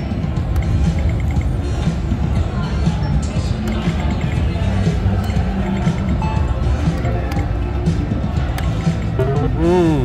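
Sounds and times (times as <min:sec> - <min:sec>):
background music: 0:00.0 - 0:10.0
low casino din: 0:00.1 - 0:10.0.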